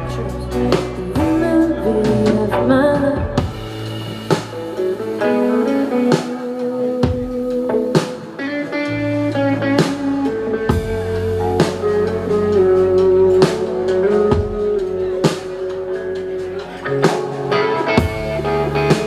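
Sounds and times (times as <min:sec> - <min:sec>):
bass guitar: 0:00.0 - 0:19.0
electric guitar melody: 0:00.0 - 0:19.0.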